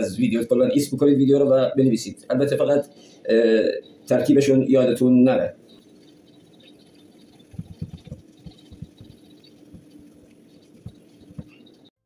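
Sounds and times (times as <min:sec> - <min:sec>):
faint steady hum: 0:00.0 - 0:11.9.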